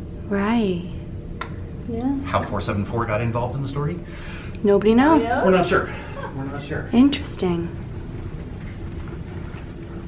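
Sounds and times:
faint steady hum: 0:00.0 - 0:10.0
low background rumble: 0:03.0 - 0:10.0.

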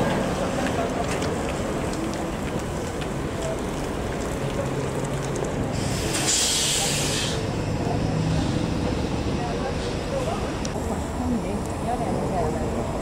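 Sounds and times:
low hum of running vehicles: 0:00.0 - 0:13.0
trolleybus pulling away: 0:00.0 - 0:13.0
compressed air hiss: 0:05.7 - 0:07.5.

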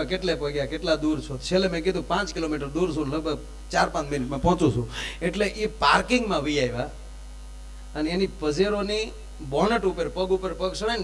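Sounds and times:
man talking: 0:00.0 - 0:07.0, 0:08.0 - 0:11.0
low electrical mains hum: 0:00.0 - 0:11.0.

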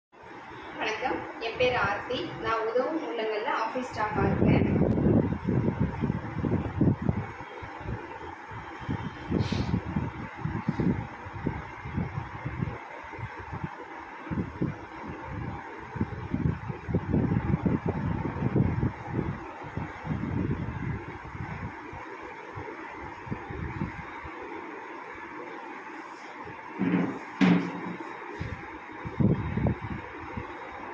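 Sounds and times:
wind gusts on microphone: 0:01.0 - 0:24.6, 0:26.4 - 0:30.9.

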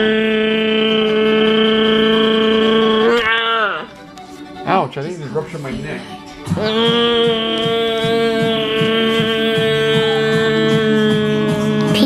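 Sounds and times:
person holding a long sung note: 0:00.0 - 0:03.9, 0:06.6 - 0:12.0.

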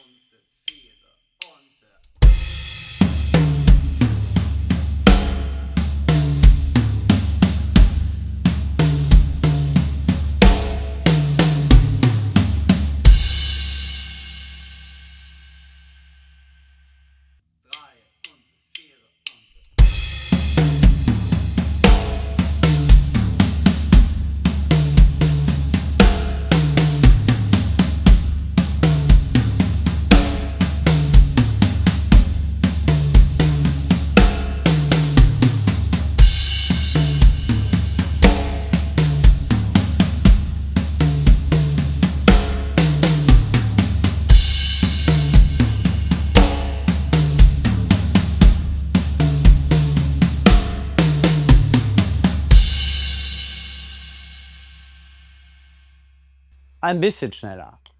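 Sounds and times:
snare strokes: 0:00.0 - 0:02.0
count-in clicks: 0:00.0 - 0:02.2, 0:17.7 - 0:19.7
bass drum pulse: 0:03.4 - 0:13.4, 0:19.8 - 0:52.8.

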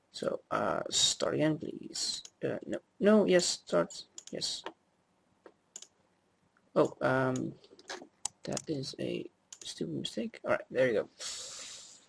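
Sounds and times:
computer mouse clicks: 0:04.2 - 0:04.8, 0:05.7 - 0:06.0, 0:07.4 - 0:08.8.

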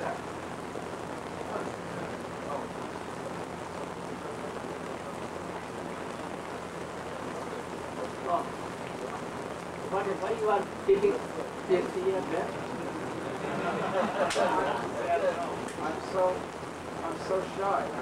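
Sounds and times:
faint voices: 0:00.0 - 0:18.0
steady hiss: 0:00.0 - 0:18.0.

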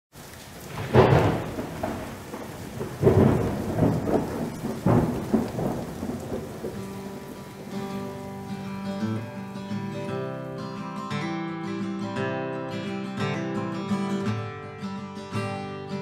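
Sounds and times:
steady rain: 0:00.1 - 0:11.2
rolls of thunder: 0:00.6 - 0:08.4.

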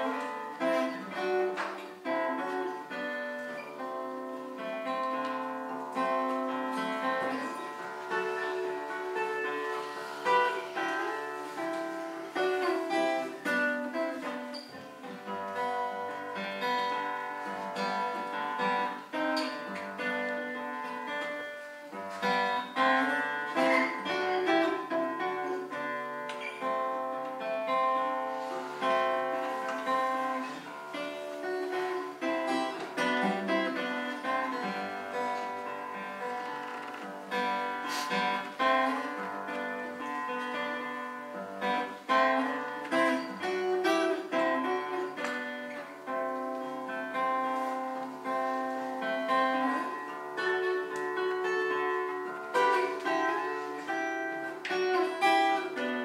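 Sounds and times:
fingerpicked acoustic guitar: 0:00.0 - 0:56.0.

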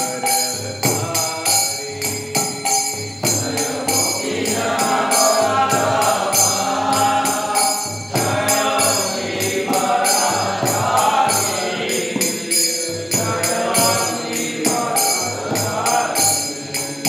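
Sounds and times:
devotional group singing: 0:00.0 - 0:17.0
metallic percussion beat: 0:00.0 - 0:17.0.

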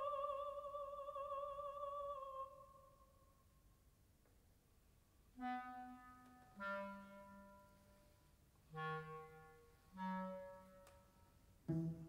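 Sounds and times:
clarinet sustained notes: 0:05.4 - 0:08.1, 0:08.7 - 0:12.0.

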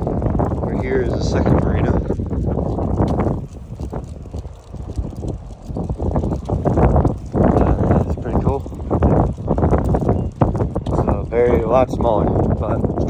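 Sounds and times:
wind on microphone: 0:00.0 - 0:13.0
footsteps on concrete: 0:00.5 - 0:11.7.

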